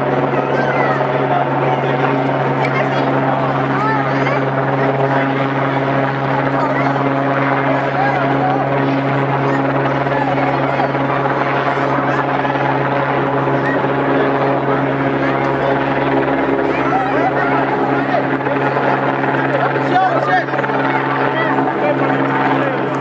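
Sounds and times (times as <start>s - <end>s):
helicopter drone: 0.0s - 23.0s
voices chattering: 0.0s - 23.0s.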